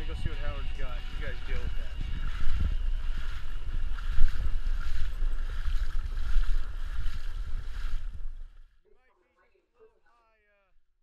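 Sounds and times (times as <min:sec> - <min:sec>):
wind buffeting microphone: 0:00.0 - 0:08.6
shallow water washing: 0:00.0 - 0:08.7.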